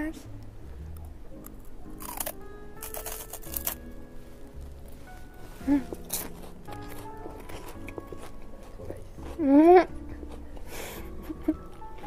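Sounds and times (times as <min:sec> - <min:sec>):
soft background music: 0:00.0 - 0:12.0
crunching bites into wafer cone: 0:01.4 - 0:03.8.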